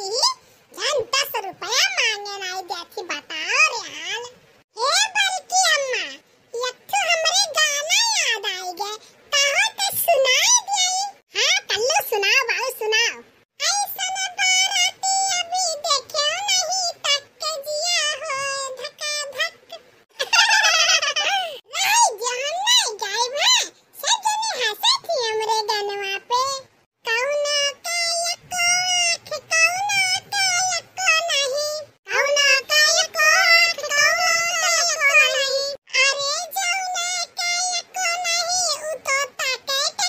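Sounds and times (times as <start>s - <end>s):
high-pitched cartoon voice singing: 0.0s - 40.0s.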